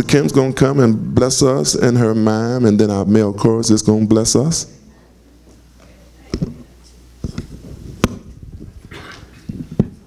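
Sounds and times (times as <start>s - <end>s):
sound system hum: 0.0s - 10.0s
microphone handling thumps: 6.3s - 10.0s.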